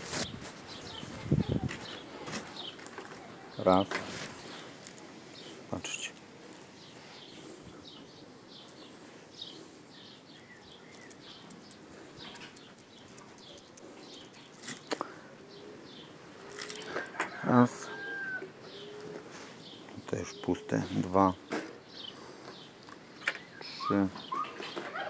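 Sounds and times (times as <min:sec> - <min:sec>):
small bird chirping: 0:04.4 - 0:17.0
sharp clicks: 0:10.8 - 0:15.0.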